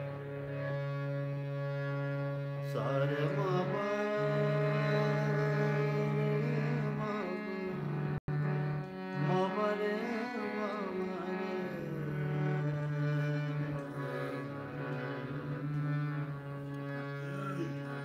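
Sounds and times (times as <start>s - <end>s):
harmonium drone: 0.0s - 18.0s
man singing long held notes: 2.6s - 8.0s, 9.1s - 14.8s, 17.1s - 18.0s.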